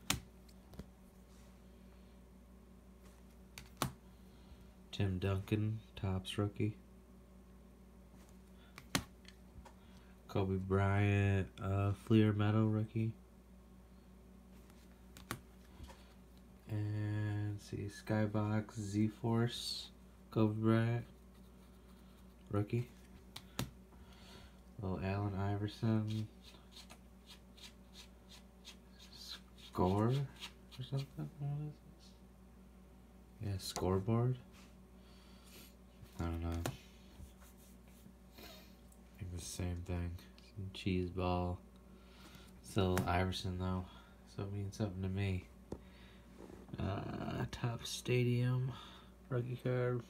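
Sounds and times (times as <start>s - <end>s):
faint steady hum: 0.0s - 50.0s.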